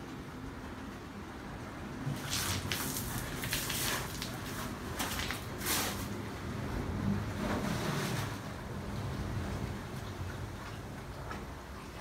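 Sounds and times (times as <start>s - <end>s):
wind: 0.0s - 12.0s
ocean surf rumble: 5.9s - 12.0s.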